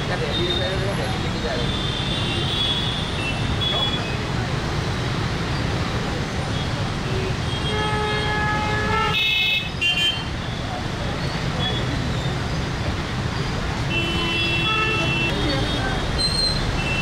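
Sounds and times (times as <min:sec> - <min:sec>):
car and motorbike horns honking: 0:07.0 - 0:10.4, 0:13.8 - 0:17.0.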